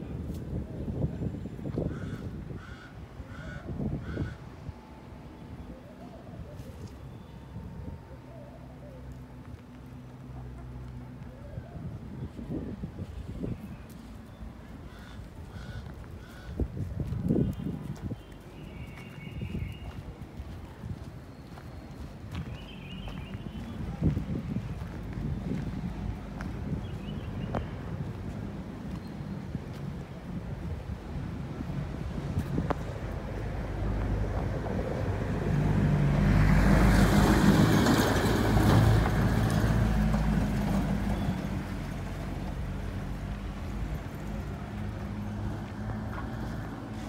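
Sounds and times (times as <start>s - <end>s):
footsteps on dirt: 15.8s - 30.0s
vehicle passing by: 31.2s - 47.0s.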